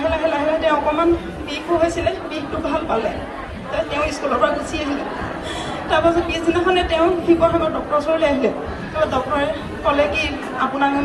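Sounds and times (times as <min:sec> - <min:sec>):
woman talking into microphone: 0:00.0 - 0:11.0.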